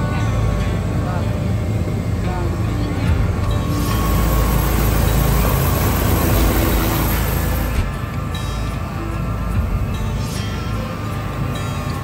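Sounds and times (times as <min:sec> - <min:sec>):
music playing: 0:00.0 - 0:12.0
helicopter low rumble: 0:00.8 - 0:09.0.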